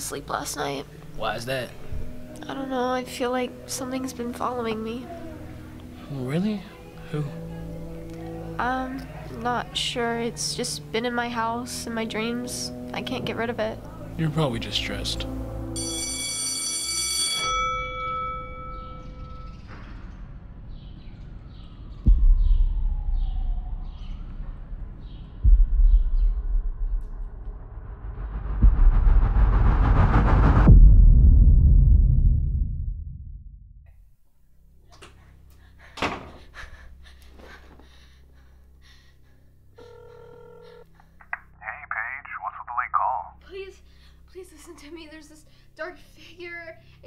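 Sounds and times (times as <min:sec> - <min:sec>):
ringing bell-like tone: 0:15.8 - 0:19.6.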